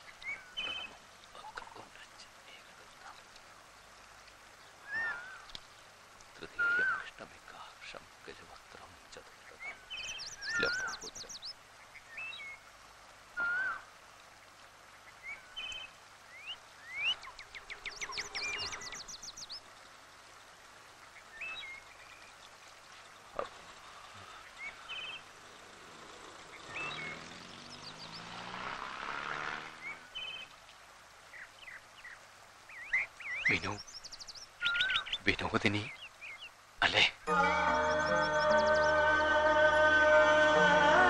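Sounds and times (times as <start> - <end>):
birds chirping and whistling: 0.0 - 1.0, 4.8 - 5.5, 6.5 - 7.0, 9.6 - 12.6, 13.4 - 13.8, 15.2 - 19.6, 24.2 - 25.2, 26.5 - 28.4, 29.8 - 30.5, 31.6 - 35.2, 37.4 - 39.8.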